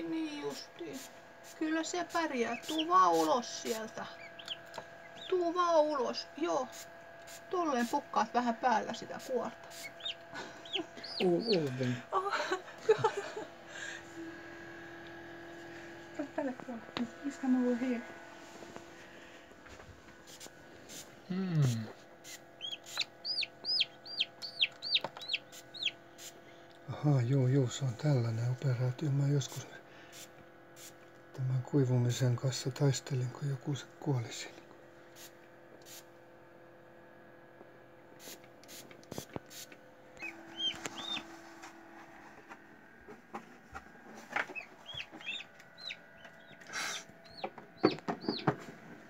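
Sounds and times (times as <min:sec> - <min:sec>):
chick peeping: 0:04.2 - 0:05.4, 0:09.8 - 0:11.7, 0:22.6 - 0:26.0, 0:40.2 - 0:41.3, 0:44.5 - 0:48.5.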